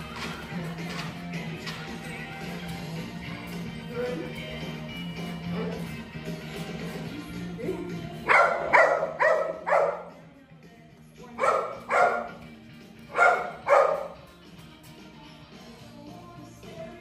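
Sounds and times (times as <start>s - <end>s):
background music: 0.0s - 17.0s
small dog barking: 8.3s - 10.1s, 11.4s - 12.4s, 13.1s - 14.2s.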